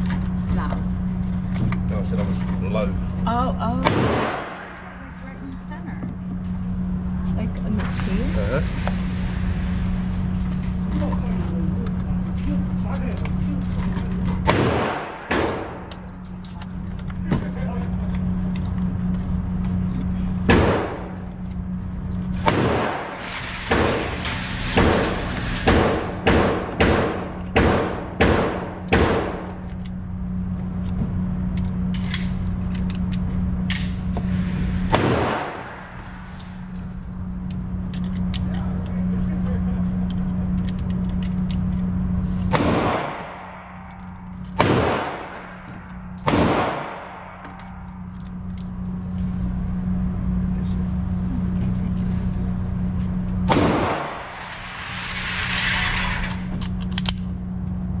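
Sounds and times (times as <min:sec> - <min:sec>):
low hum: 0:00.0 - 0:58.0
gunshots echoing indoors: 0:03.8 - 0:05.1, 0:14.4 - 0:15.9, 0:22.4 - 0:29.5, 0:34.9 - 0:36.1, 0:42.5 - 0:45.6, 0:46.2 - 0:47.6, 0:53.5 - 0:54.4.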